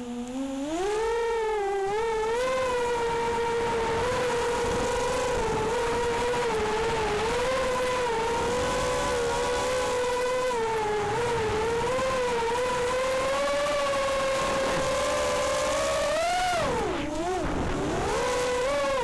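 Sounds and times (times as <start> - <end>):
drone motors whining: 0.0 - 19.0.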